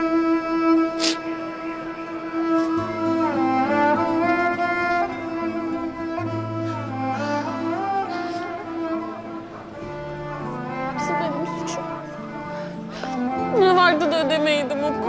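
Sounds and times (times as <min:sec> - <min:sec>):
bowed strings playing slow notes: 0:00.0 - 0:15.0.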